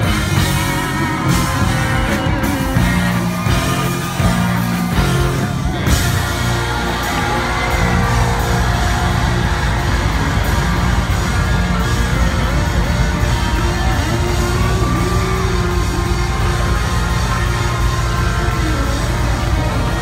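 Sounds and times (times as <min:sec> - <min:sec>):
funk band playing: 0:00.0 - 0:20.0.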